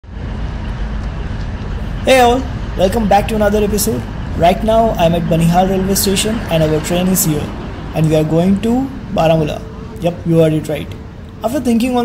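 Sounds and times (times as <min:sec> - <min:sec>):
diesel train engine rumbling: 0:00.0 - 0:12.0.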